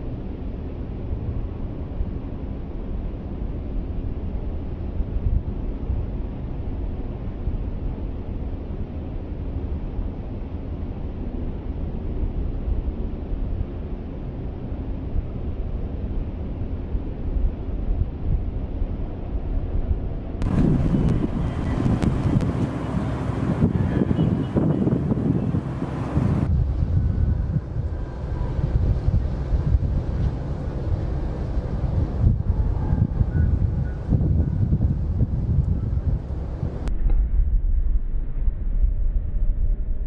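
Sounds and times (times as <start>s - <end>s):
wind buffeting microphone: 14.4s - 40.0s.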